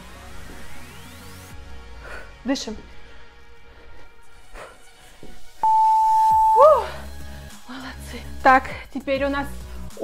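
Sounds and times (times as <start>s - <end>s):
background music: 0.0s - 10.0s
interval timer beep: 5.6s - 6.8s
short rising and falling tone: 5.6s - 6.8s.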